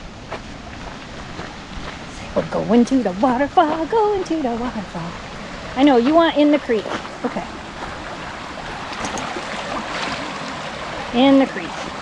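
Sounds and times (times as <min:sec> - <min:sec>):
creek running over stones: 0:00.0 - 0:12.0.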